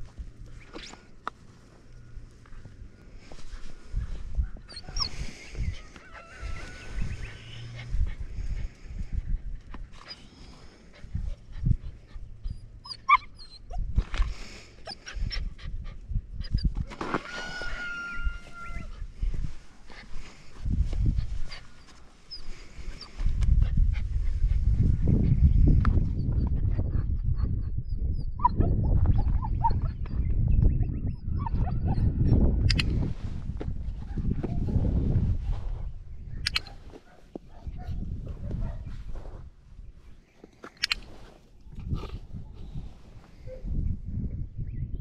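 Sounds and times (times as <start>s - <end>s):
wind rumble on microphone: 0.0s - 0.9s, 2.0s - 40.2s, 40.9s - 45.0s.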